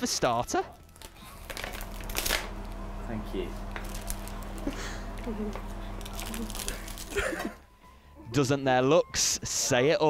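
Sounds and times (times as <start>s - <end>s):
plastic packaging crinkling: 0.7s - 2.6s, 3.6s - 7.6s
low steady hum: 0.7s - 8.3s.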